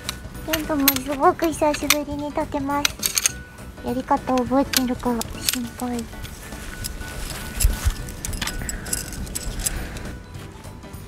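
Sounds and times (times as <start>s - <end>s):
metal tent pegs clinking: 0.0s - 11.0s.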